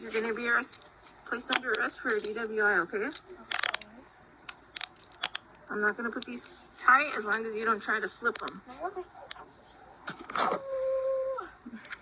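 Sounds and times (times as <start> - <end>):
woman whimpering: 10.5 - 11.9.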